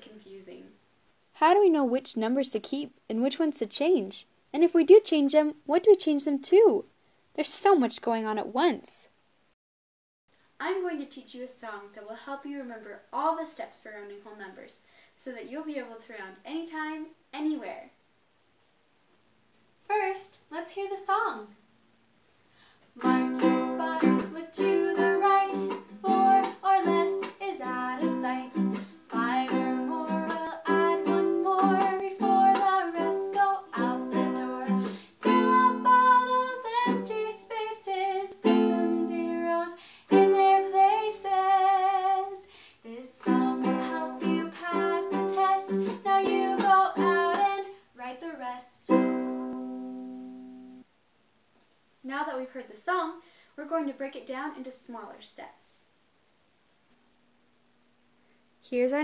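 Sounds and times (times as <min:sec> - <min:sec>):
ukulele strumming: 0:23.0 - 0:37.3, 0:38.4 - 0:39.4, 0:43.2 - 0:47.6, 0:48.9 - 0:50.8
woman singing: 0:23.0 - 0:48.9.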